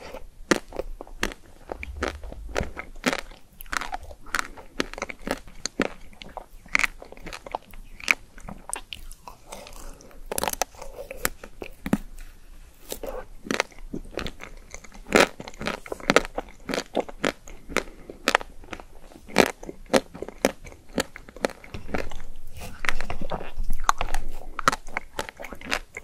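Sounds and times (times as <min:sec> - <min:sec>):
crunchy chewing of ice cream bar: 0:00.0 - 0:26.0.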